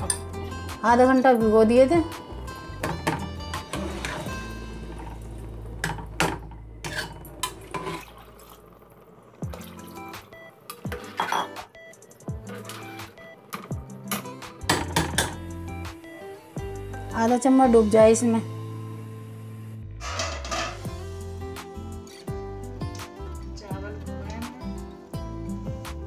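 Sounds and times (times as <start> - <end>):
background music: 0.0 - 8.3, 9.3 - 26.0
water pouring into pot: 3.7 - 6.4, 7.1 - 11.4
glass and spoon clinking on pot: 11.0 - 11.6.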